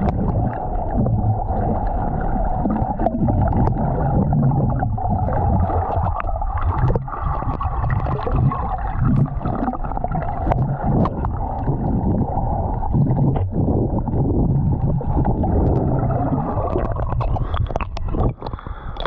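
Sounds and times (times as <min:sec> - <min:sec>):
muffled underwater water rush: 0:00.0 - 0:19.0.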